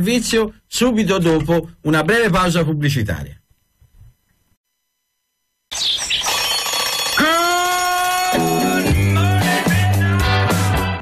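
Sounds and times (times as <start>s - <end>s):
alarm clock bell ringing: 6.2s - 9.1s.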